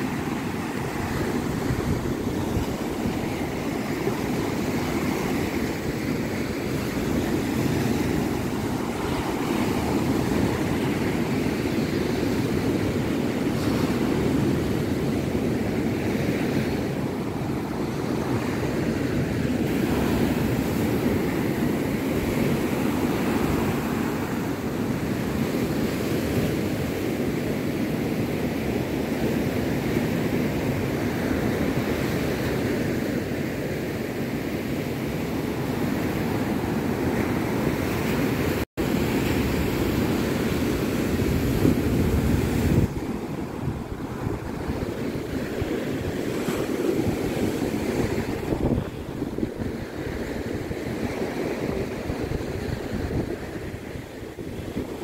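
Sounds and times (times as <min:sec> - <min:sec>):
wind buffeting microphone: 0:00.0 - 0:33.6, 0:34.4 - 0:55.0
sea waves breaking on beach: 0:00.0 - 0:55.0.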